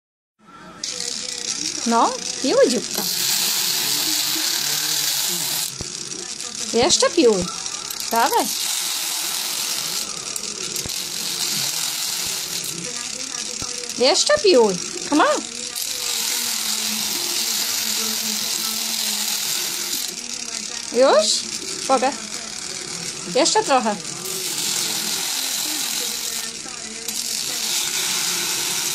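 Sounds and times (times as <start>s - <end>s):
woman's voice: 0.8s - 3.0s, 6.2s - 8.6s, 12.7s - 18.8s, 20.2s - 22.6s, 23.2s - 24.2s, 25.4s - 27.9s
electric foot file whirring: 0.8s - 28.9s
motor hum: 0.8s - 28.9s
high grinding hiss: 0.9s - 28.9s.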